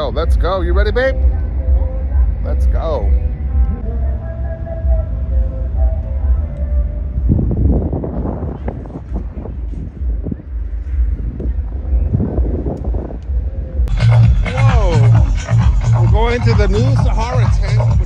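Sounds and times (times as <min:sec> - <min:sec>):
distant bass music rumble: 0:00.0 - 0:18.0.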